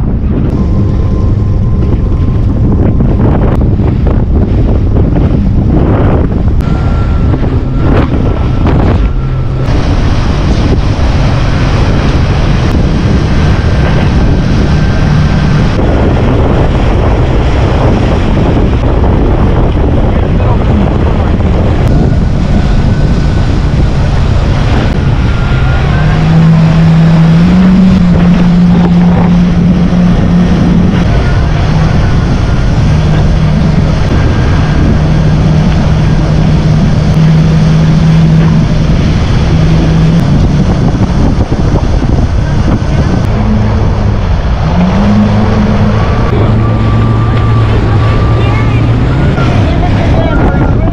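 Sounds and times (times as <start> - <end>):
jet ski engine running: 0.0 - 50.9
water rushing past hull: 0.0 - 50.9
wind buffeting microphone: 0.0 - 50.9.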